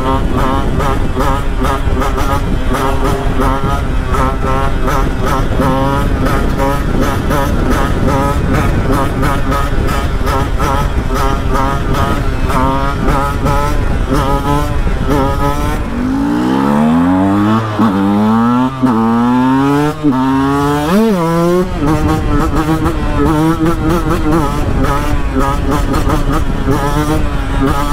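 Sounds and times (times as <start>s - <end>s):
motorcycle engine running: 0.0s - 27.9s
wind on microphone: 0.0s - 27.9s.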